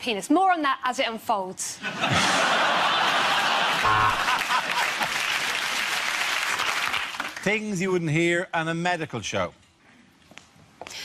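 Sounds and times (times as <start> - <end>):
studio audience applauding: 3.0 - 7.7.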